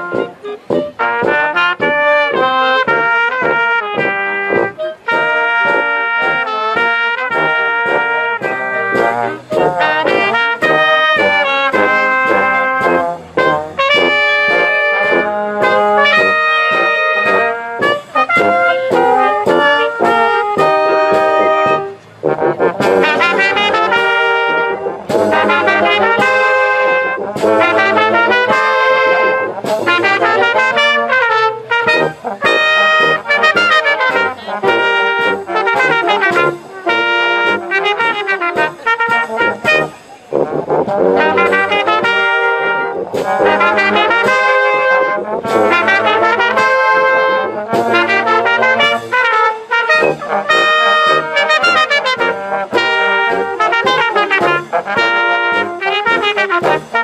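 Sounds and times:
wind band playing: 0.0 - 57.0.

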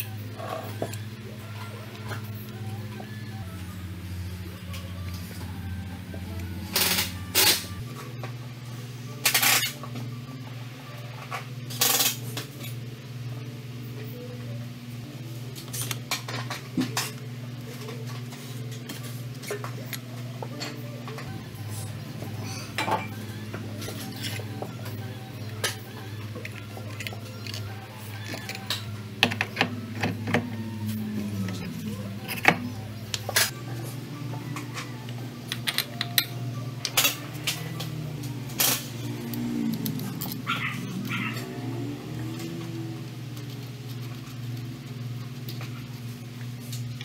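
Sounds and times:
steady low hum: 0.0 - 47.0
wavering gliding tone: 21.3 - 35.5, 36.2 - 43.9.

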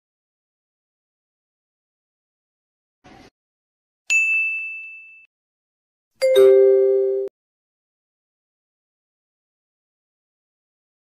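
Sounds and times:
bright quiz ding: 6.2 - 7.3.

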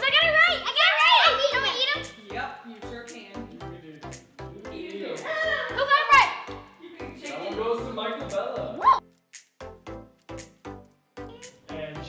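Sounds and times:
children squealing and shouting: 0.0 - 2.1, 5.2 - 6.5, 8.8 - 9.0
background music with steady beat: 0.0 - 12.0.

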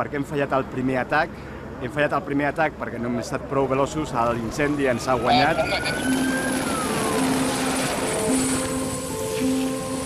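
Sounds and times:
helicopter rushing noise: 4.4 - 10.0
sustained music notes: 5.8 - 10.0.

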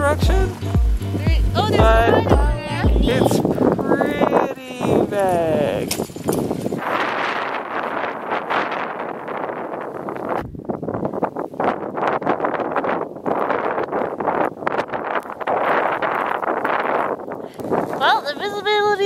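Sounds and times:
wind on microphone: 0.0 - 19.0.

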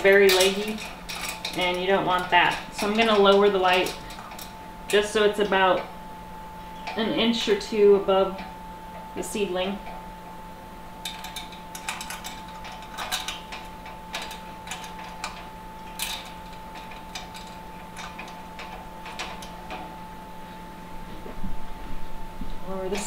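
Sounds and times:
metal chain clinking and rattling: 0.0 - 5.3, 11.0 - 20.0
steady hum: 0.0 - 23.0.

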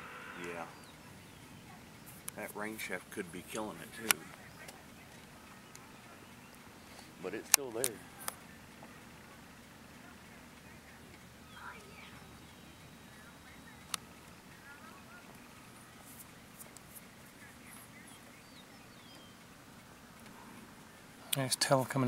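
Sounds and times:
faint steady hiss: 0.0 - 22.0
faint bird chirps: 10.5 - 21.3.

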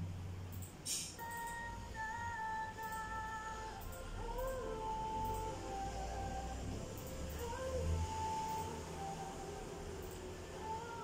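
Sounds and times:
steady low bass: 0.0 - 0.6.

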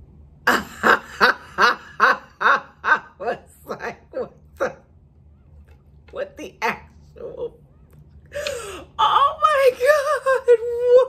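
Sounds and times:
woman laughing: 0.5 - 4.8.

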